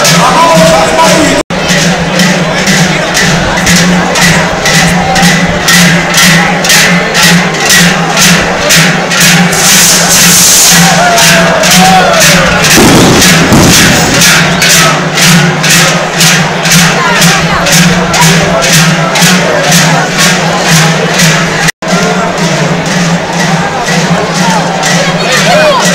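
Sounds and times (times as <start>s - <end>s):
large cowbells clanging: 0.0s - 25.9s.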